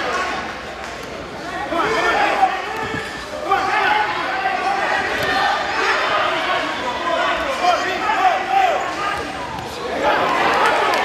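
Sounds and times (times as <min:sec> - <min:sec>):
spectators shouting: 0:01.7 - 0:11.0.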